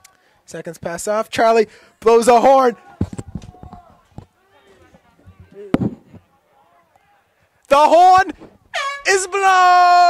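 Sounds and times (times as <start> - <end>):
faint voices: 2.6 - 7.6.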